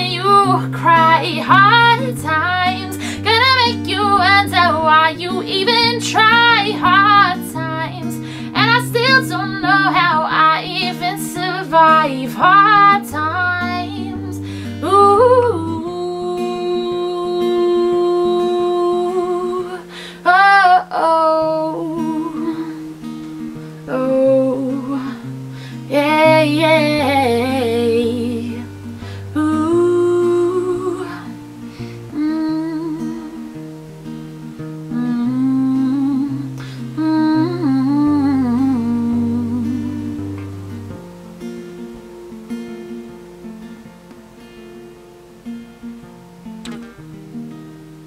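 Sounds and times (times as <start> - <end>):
acoustic guitar notes: 0.0 - 48.0
breath: 3.0 - 3.2, 8.2 - 8.6, 14.4 - 14.8, 19.9 - 20.2, 25.5 - 25.9, 29.0 - 29.3, 31.6 - 32.1, 36.6 - 36.9.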